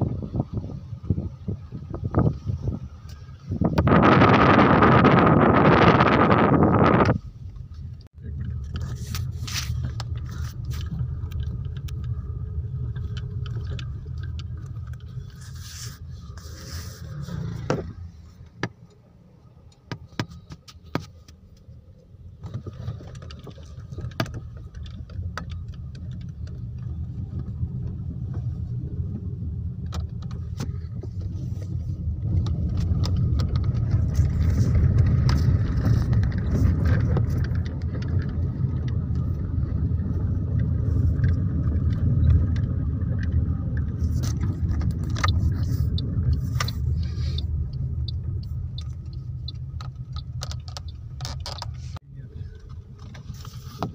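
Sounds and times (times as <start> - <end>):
car engine and tyre rumble: 0.0 - 53.9
small clicks and rattles: 8.2 - 16.4, 22.4 - 28.7, 29.8 - 53.9.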